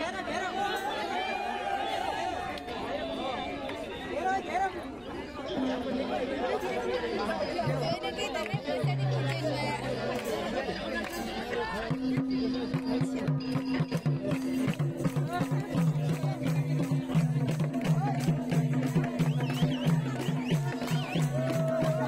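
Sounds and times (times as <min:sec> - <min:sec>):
crowd chatter: 0:00.0 - 0:22.0
hand drums beating: 0:11.8 - 0:22.0.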